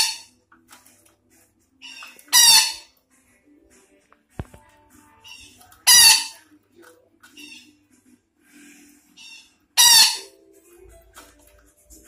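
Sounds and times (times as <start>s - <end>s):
parakeet harsh screeches: 0.0s - 0.3s, 1.8s - 2.9s, 5.2s - 6.4s, 9.1s - 10.3s.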